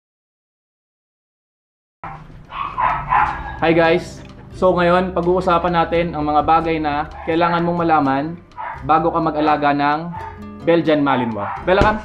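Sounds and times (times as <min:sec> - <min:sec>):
dog barking: 0:02.0 - 0:03.8, 0:07.0 - 0:07.8, 0:08.6 - 0:09.0, 0:10.0 - 0:10.4, 0:11.2 - 0:12.0.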